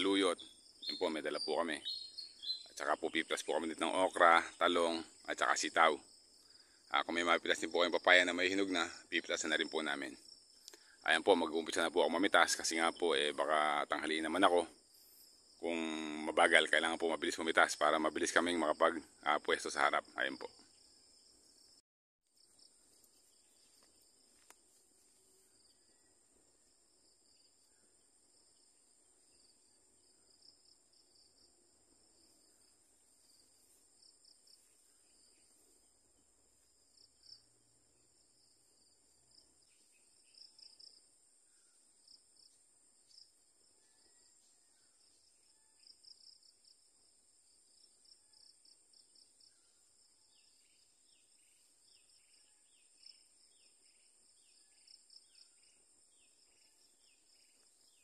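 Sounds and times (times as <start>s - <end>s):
insect chirps: 0.0s - 58.0s.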